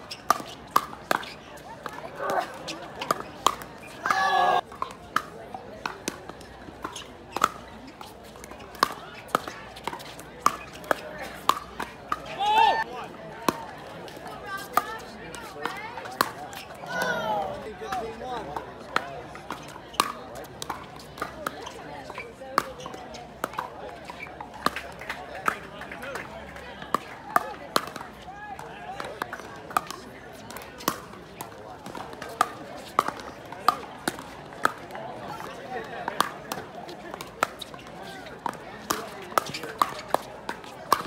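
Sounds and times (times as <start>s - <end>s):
voices in background: 0.0s - 41.0s.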